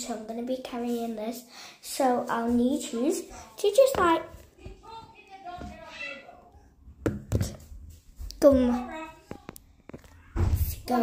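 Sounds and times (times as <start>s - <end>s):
child's voice: 0.0s - 6.6s, 8.2s - 11.0s.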